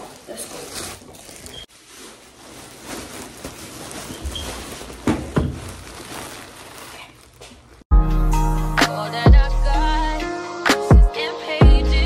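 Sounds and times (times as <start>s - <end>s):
plastic bag rustling: 0.0s - 7.8s.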